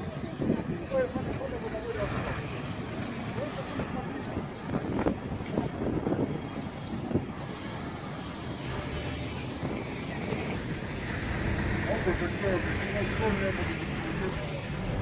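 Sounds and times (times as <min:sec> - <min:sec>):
people talking: 0:00.0 - 0:10.7, 0:11.7 - 0:15.0
wind on microphone: 0:00.0 - 0:14.0
outdoor street noise: 0:00.0 - 0:15.0.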